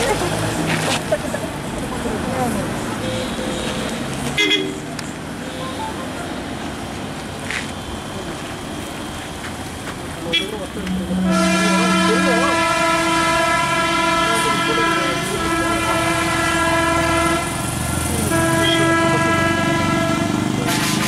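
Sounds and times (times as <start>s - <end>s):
vehicle horn blast: 4.4s - 4.8s, 10.3s - 20.8s
lower horn tone: 10.9s - 20.5s.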